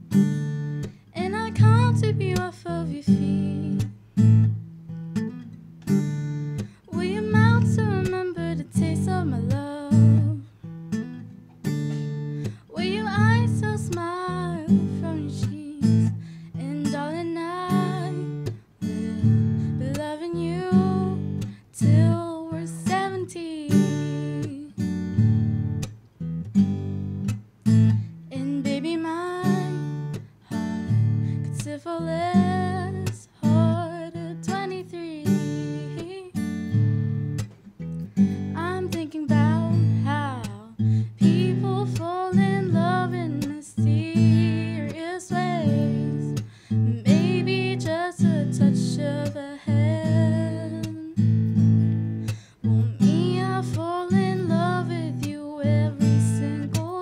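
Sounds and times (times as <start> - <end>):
acoustic guitar chords: 0.0 - 57.0
girl singing: 1.1 - 4.0, 6.8 - 10.6, 12.5 - 24.9, 28.2 - 36.4, 38.5 - 51.3, 52.6 - 57.0.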